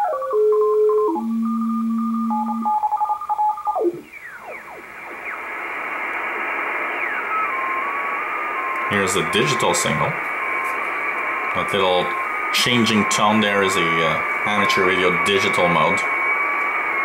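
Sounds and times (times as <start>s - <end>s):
radio band hiss: 4.0s - 17.0s.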